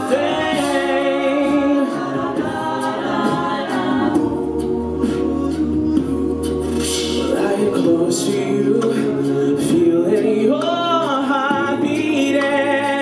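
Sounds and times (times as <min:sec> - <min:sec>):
a cappella group singing: 0:00.0 - 0:13.0
deep sung bass line: 0:00.0 - 0:13.0.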